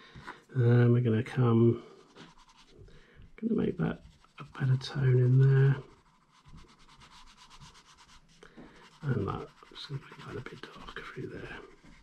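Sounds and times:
pencil shading on paper: 4.0 - 12.0.

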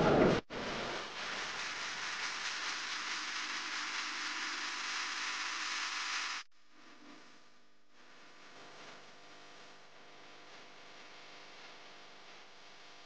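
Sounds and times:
steady hiss: 0.5 - 6.5.

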